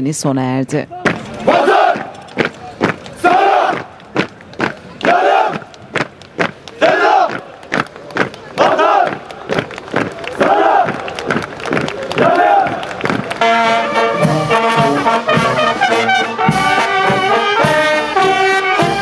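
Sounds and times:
soldiers shouting in unison: 0.9 - 2.2, 3.2 - 3.9, 5.0 - 5.6, 6.8 - 7.4, 8.6 - 9.2, 10.3 - 11.0, 12.1 - 12.9
boots stamping: 0.9 - 7.5.

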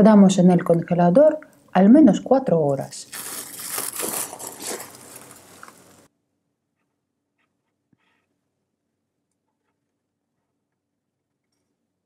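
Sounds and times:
cling film crinkling: 2.8 - 6.1.

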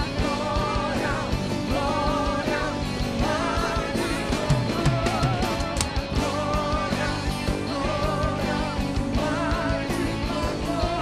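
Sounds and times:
guitar: 0.0 - 11.0
drum beat: 2.0 - 8.4.

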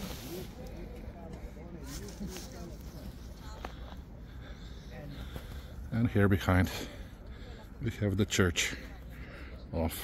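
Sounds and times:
distant voices talking: 0.0 - 10.0
low outdoor background hum: 0.0 - 10.0.

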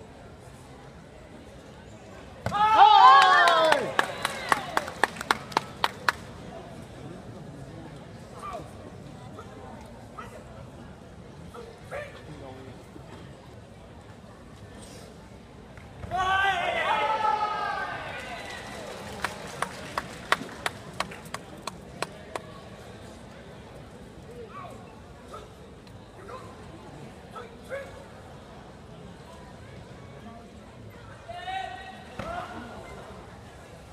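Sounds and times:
crowd murmur: 0.0 - 16.1, 16.9 - 33.9
hall hubbub: 0.0 - 33.9.

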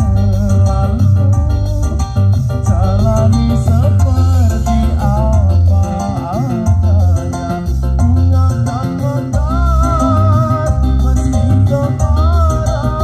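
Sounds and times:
loud music with singing and heavy bass: 0.0 - 13.0.

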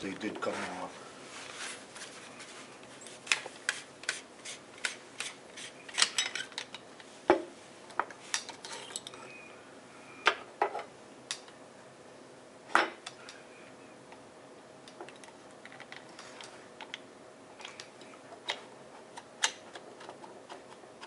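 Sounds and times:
metal parts clinking on wood: 8.6 - 9.2.

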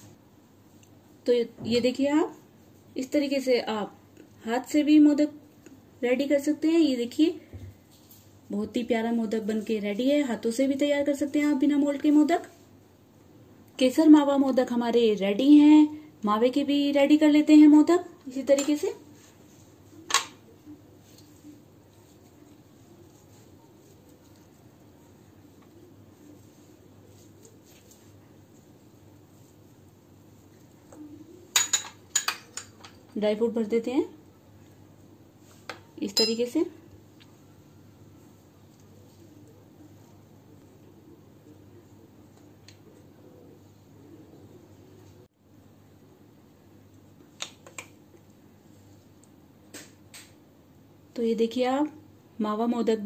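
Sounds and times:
faint steady hum: 0.0 - 53.0.

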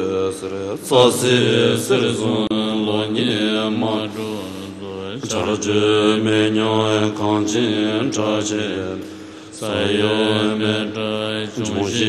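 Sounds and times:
low male voices chanting: 0.0 - 12.0.

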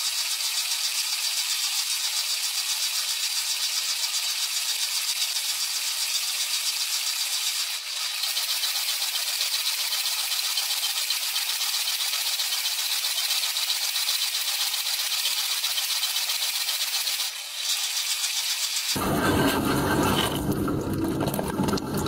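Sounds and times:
dishwasher water spray hiss: 0.0 - 20.1
fast rattle: 0.0 - 20.6.

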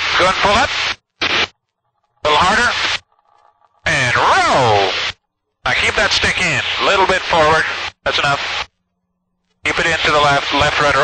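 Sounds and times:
voices over intercom: 2.2 - 3.0, 3.8 - 8.6, 9.6 - 11.0.

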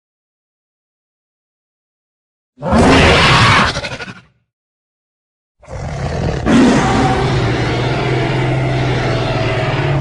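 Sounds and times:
big cat snarling roar: 5.6 - 10.0.

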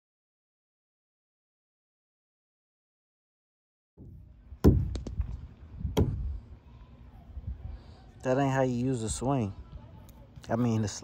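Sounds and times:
sharp thumps: 4.0 - 6.4.

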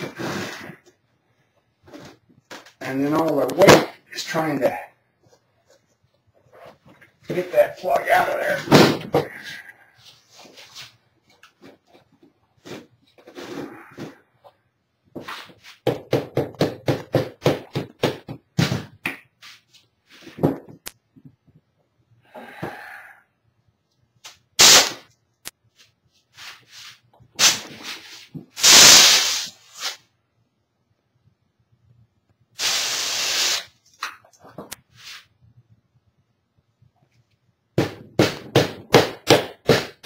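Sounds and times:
rubber mallet knocking on plaster: 15.8 - 19.0
hissing noise bursts: 24.6 - 25.0, 28.6 - 30.0, 32.6 - 33.8.

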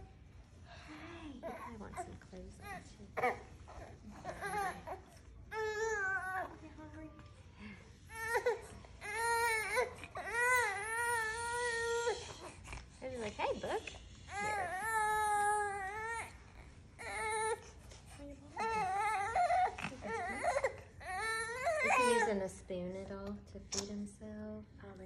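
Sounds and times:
baby crying: 8.1 - 12.4, 14.3 - 17.7, 18.6 - 22.3.

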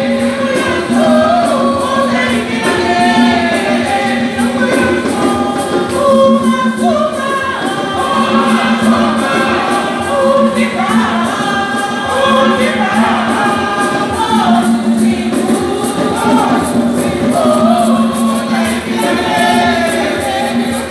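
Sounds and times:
choir singing: 0.0 - 20.9.

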